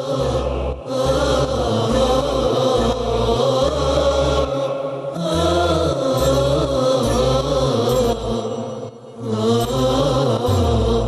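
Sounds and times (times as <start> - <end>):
chorus chanting: 0.0 - 11.0
pulsing low bass notes: 5.2 - 8.4, 9.4 - 11.0.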